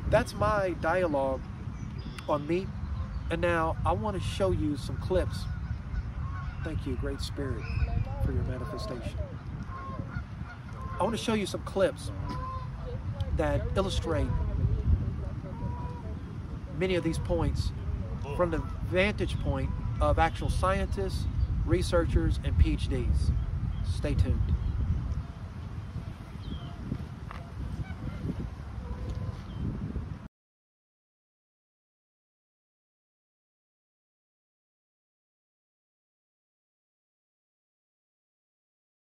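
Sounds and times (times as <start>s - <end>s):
wind rumbling on microphone: 0.0s - 30.3s
faint goose honks: 4.8s - 11.3s, 12.0s - 14.5s, 18.3s - 20.2s
faint short bird calls: 12.2s - 13.4s.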